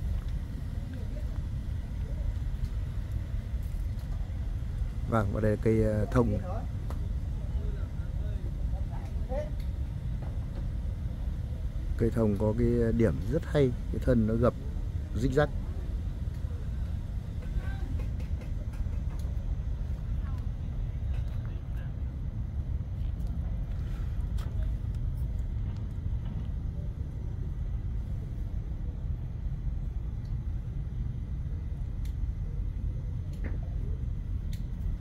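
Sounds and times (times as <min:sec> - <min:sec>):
low outdoor rumble: 0:00.0 - 0:35.0.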